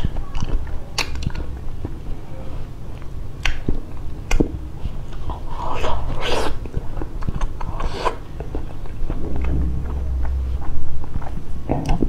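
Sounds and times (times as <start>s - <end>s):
chewing with wet mouth clicks: 3.0s - 5.9s
wet biting and sucking: 5.1s - 8.2s
wet slurp: 5.4s - 6.6s.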